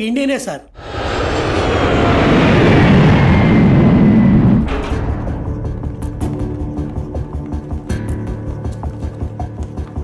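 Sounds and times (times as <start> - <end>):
jet engine roar: 0.7 - 6.0.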